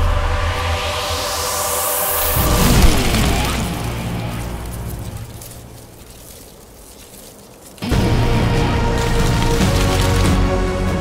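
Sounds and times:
dramatic background score: 0:00.0 - 0:06.0, 0:07.8 - 0:11.0
dry leaves rustling: 0:02.1 - 0:11.0.

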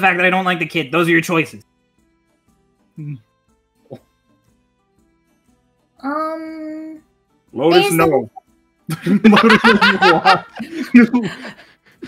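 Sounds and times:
people laughing: 0:08.9 - 0:11.8.

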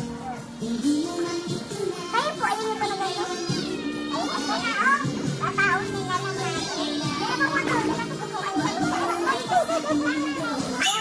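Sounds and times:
children's voices and chatter: 0:00.0 - 0:11.0
music playing: 0:00.0 - 0:11.0.

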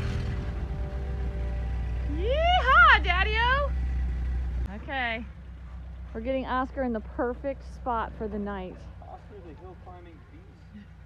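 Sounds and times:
van engine idling: 0:00.0 - 0:11.0.

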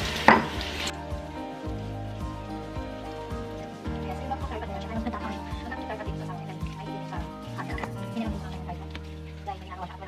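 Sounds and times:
tap water running into sink: 0:00.0 - 0:09.4
background music with soft beat: 0:00.0 - 0:10.0.

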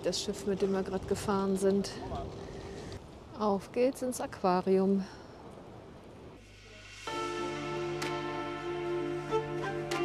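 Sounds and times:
faint background hiss: 0:00.0 - 0:10.0.

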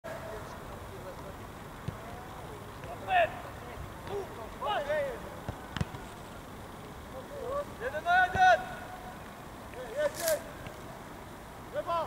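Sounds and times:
ball being kicked: 0:05.4 - 0:06.0
footballers shouting: 0:07.2 - 0:09.2.

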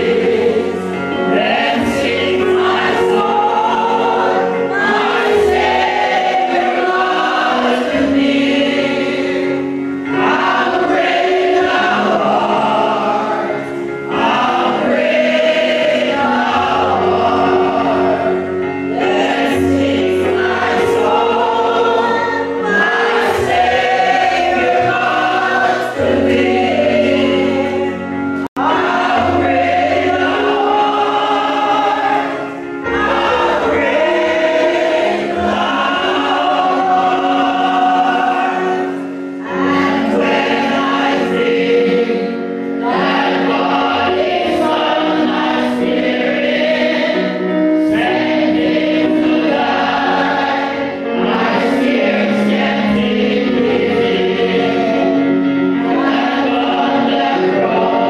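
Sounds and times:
congregation singing a hymn: 0:00.0 - 0:58.0.

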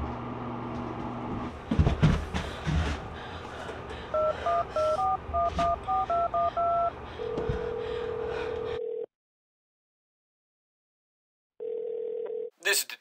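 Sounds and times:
touch-tone keypad beeps: 0:04.2 - 0:06.9
phone ringing tone: 0:04.2 - 0:09.1, 0:11.6 - 0:12.5.

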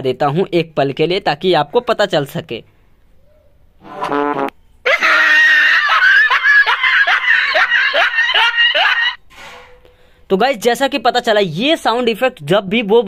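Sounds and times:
high-pitched laughter: 0:04.8 - 0:09.2.

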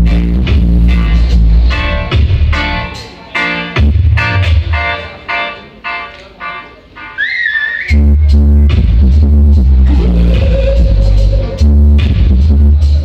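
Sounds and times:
heavy bassline and drums: 0:00.0 - 0:05.1, 0:07.9 - 0:13.0
dub reggae through sound system: 0:00.0 - 0:13.0.

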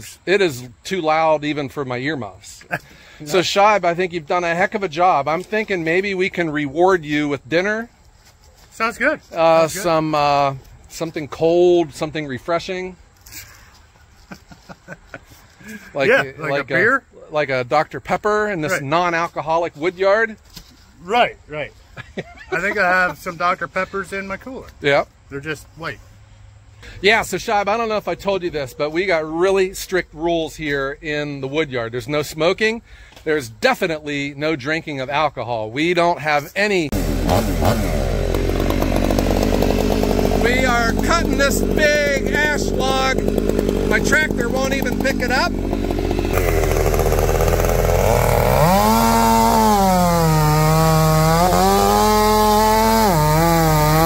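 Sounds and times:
person talking: 0:09.0 - 0:10.6, 0:15.7 - 0:17.4, 0:40.3 - 0:45.7
chainsaw cutting log: 0:09.4 - 0:10.6, 0:36.9 - 0:54.0
man chuckling: 0:13.3 - 0:16.6, 0:22.0 - 0:22.8.

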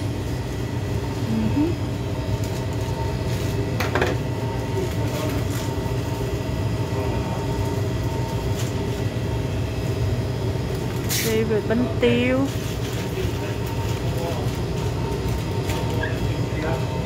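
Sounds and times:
shop equipment humming: 0:00.0 - 0:17.0.

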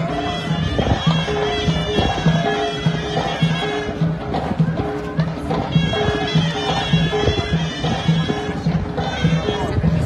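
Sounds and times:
bagpipe drone: 0:00.0 - 0:04.1, 0:05.6 - 0:10.0
drum beat: 0:00.0 - 0:10.0
voices: 0:00.0 - 0:10.0.

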